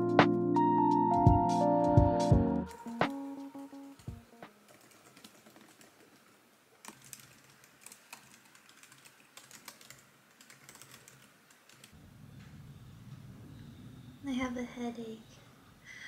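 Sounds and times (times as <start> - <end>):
laptop keyboard typing clicks: 3.9 - 12.0.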